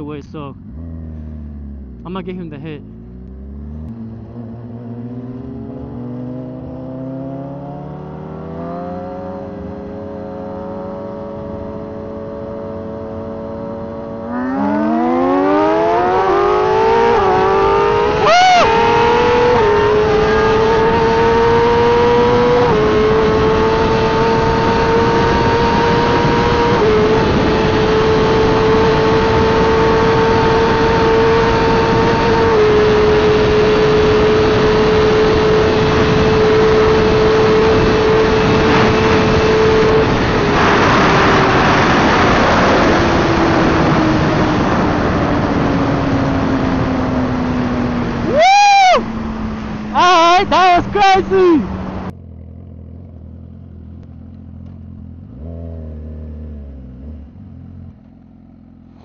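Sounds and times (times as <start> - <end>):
motorcycle engine revving with gear shifts: 0.3 - 59.0
wind rush: 14.1 - 52.1.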